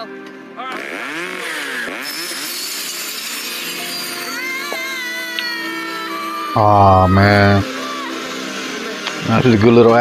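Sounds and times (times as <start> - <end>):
power saw cutting: 0.6 - 10.0
girl screaming: 4.0 - 8.3.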